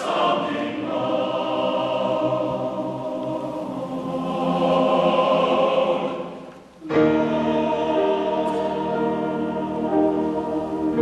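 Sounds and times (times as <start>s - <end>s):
men's choir singing: 0.0s - 11.0s.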